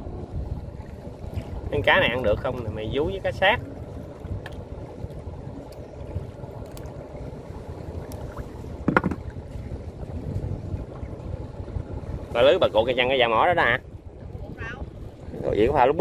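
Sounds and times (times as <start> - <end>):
river water around a boat: 0.0 - 16.0
wind on microphone: 0.0 - 16.0.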